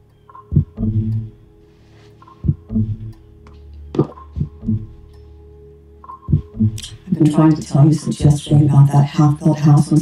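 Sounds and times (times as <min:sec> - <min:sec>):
low heartbeat-like thumps: 0:00.5 - 0:01.4, 0:02.4 - 0:03.2, 0:03.9 - 0:05.1, 0:06.3 - 0:07.0.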